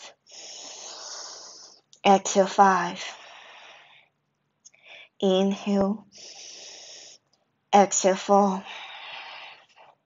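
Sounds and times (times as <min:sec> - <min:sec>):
person inhaling deeply: 0:06.2 - 0:07.2.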